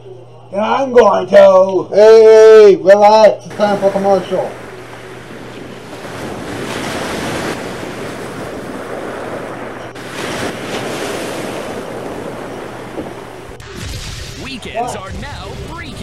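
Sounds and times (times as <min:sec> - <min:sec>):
surf rushing: 0:03.5 - 0:16.0
wind noise on microphone: 0:04.5 - 0:14.4, 0:15.0 - 0:16.0.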